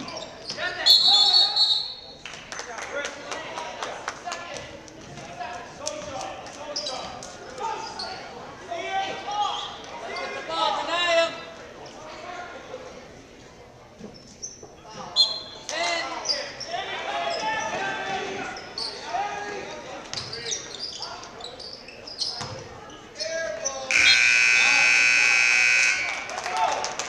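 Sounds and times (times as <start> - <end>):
scoreboard buzzer blast: 23.9 - 26.2.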